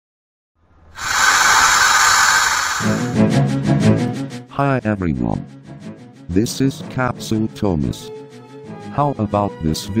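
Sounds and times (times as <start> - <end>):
steam hissing sound effect: 1.0 - 3.3
music: 3.0 - 10.0.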